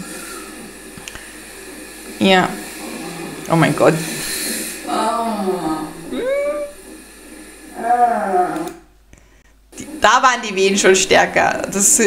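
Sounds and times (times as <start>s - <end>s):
woman moaning: 4.9s - 6.8s, 7.8s - 8.8s.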